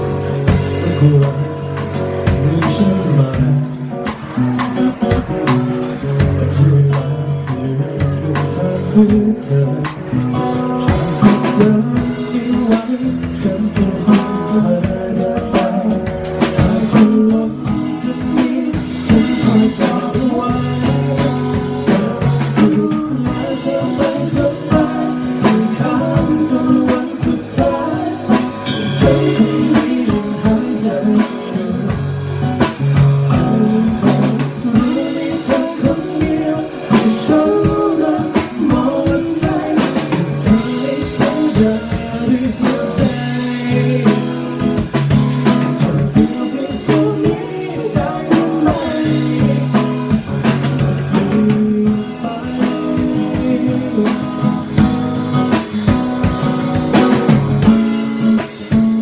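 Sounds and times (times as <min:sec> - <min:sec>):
band with drums and guitar: 0:00.0 - 0:59.0
man singing into a microphone: 0:00.0 - 0:59.0.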